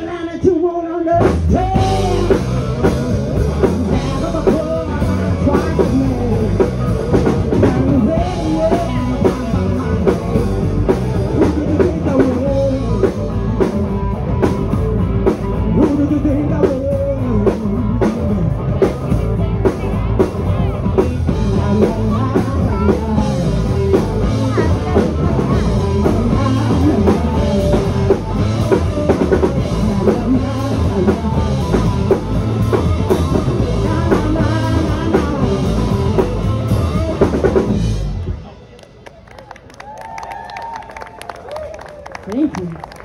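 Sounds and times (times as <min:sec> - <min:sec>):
person singing lead vocal: 0:00.0 - 0:19.8, 0:20.6 - 0:37.8
electric guitars: 0:01.1 - 0:43.0
drum kit: 0:01.2 - 0:38.5.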